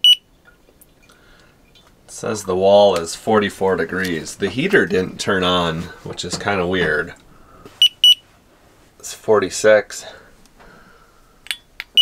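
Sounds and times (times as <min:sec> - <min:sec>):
thermometer short high beeps: 0:00.0 - 0:00.2, 0:07.8 - 0:08.2.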